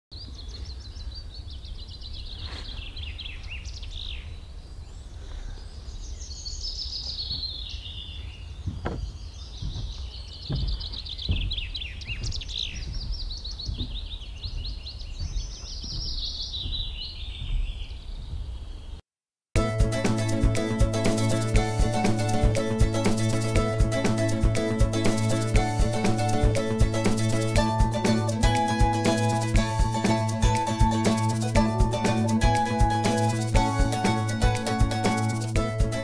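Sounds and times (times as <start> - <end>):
songbird singing: 0.1 - 19.0
soft knocks: 8.6 - 18.5.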